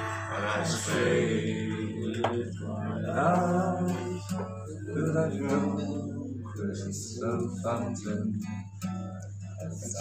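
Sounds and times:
acoustic guitar playing: 0.0s - 10.0s.

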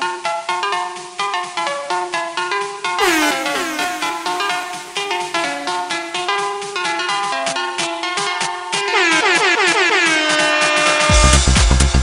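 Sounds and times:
stuttering buzzy synth note: 3.0s - 7.2s.

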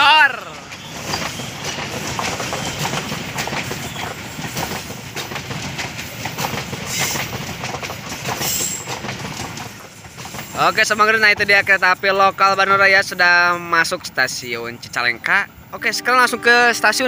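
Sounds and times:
train wheels rumbling on rail: 0.0s - 15.9s
wheels clattering over rail joints: 0.6s - 11.8s.

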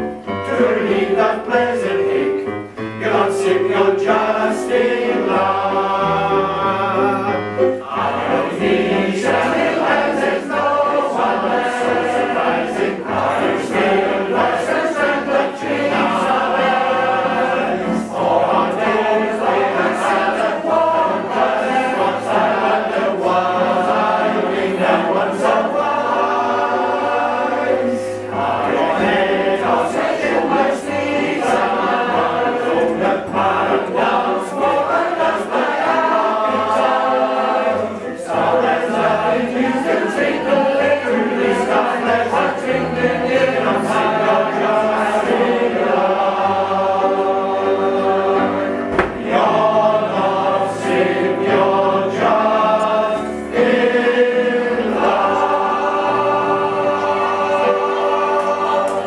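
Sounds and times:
male voice choir singing: 0.0s - 59.0s.

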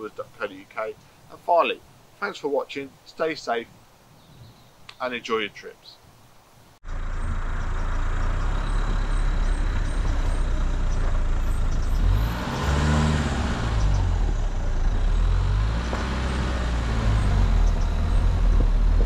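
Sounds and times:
car engine running: 6.8s - 19.0s
tyre and road rumble: 6.8s - 19.0s.

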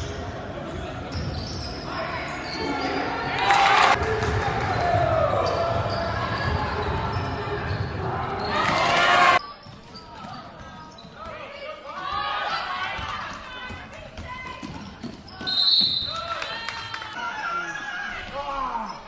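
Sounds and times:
crowd shouting and cheering: 2.6s - 9.4s.

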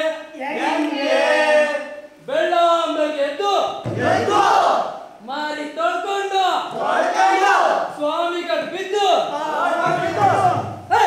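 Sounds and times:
loud group shout: 4.0s - 4.9s, 6.8s - 7.9s, 9.4s - 11.0s
men chanting in unison: 9.3s - 11.0s.

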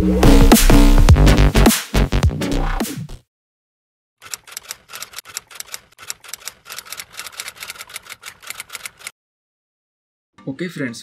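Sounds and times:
typewriter key clicks: 4.2s - 9.1s.

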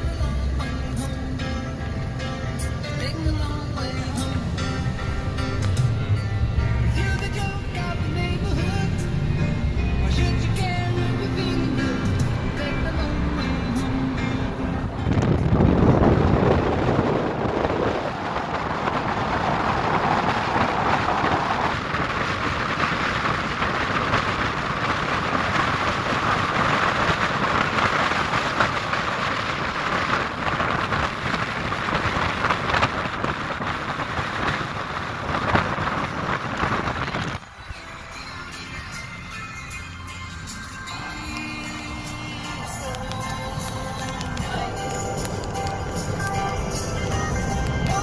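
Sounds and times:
wind and tyre noise: 0.0s - 48.0s.

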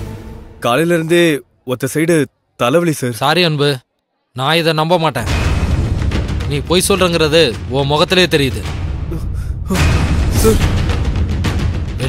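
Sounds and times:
dramatic background score: 0.0s - 1.6s, 4.9s - 12.0s
man speaking agitatedly: 0.6s - 3.8s, 4.4s - 5.3s, 6.5s - 10.7s.

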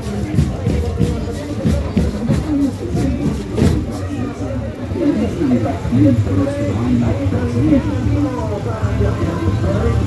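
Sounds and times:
music with a steady beat: 0.0s - 4.2s
low vehicle rumble: 0.0s - 10.0s
people's voices: 0.0s - 10.0s.

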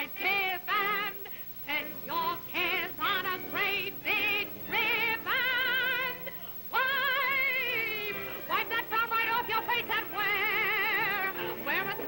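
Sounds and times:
woman singing a jaunty show tune: 0.0s - 12.0s.

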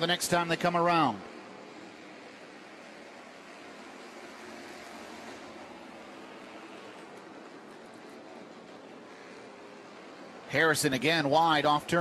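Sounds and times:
distant race car engines: 0.0s - 12.0s.

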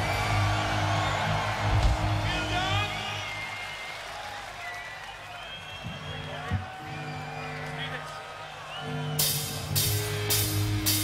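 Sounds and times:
crowd cheering: 0.0s - 11.0s
rock band electric guitars and bass: 9.2s - 11.0s.

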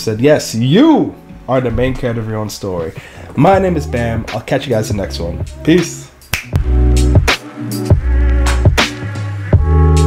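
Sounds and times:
electronic music with heavy bass: 2.8s - 10.0s
finger snap: 5.8s - 7.6s, 8.2s - 9.2s.

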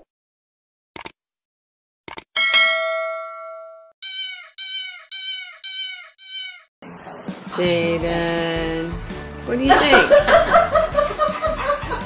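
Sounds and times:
bell ding: 2.4s - 3.9s
cat meows: 4.0s - 6.7s.

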